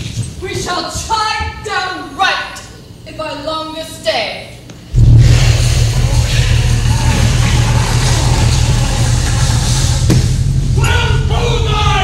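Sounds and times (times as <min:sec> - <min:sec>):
deep rumble: 0:04.9 - 0:12.0
rushing hiss: 0:05.0 - 0:10.1.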